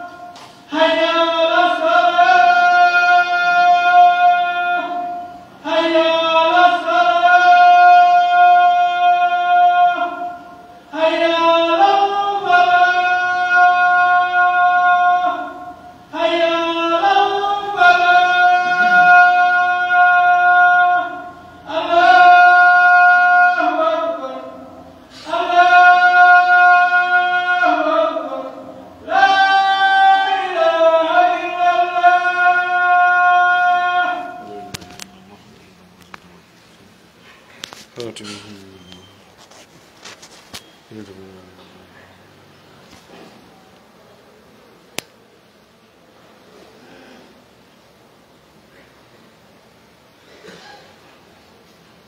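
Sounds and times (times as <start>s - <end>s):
man chanting call to prayer: 0.0s - 43.7s.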